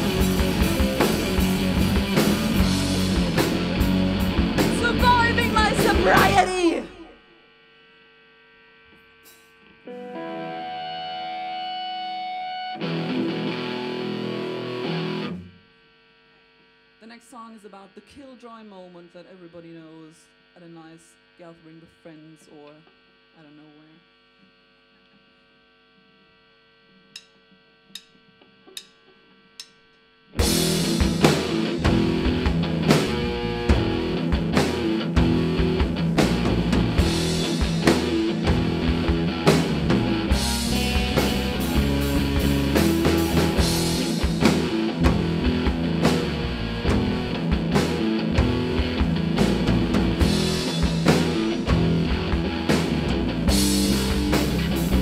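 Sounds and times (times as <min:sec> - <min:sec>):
rock band playing loud: 0:00.0 - 0:06.9, 0:09.9 - 0:15.5, 0:30.4 - 0:55.0
amplifier hum: 0:00.0 - 0:55.0.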